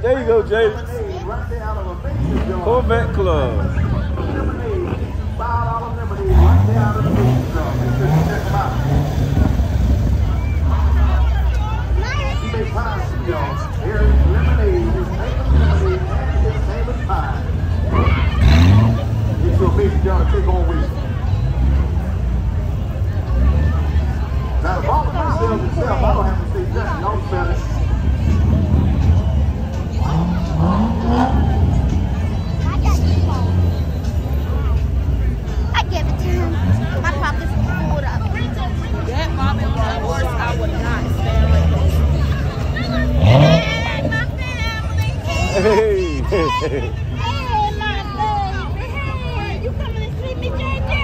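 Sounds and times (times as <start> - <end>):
crowd chatter: 0.0 - 51.0
car engine revving: 0.4 - 49.1
low exhaust rumble: 1.3 - 24.6.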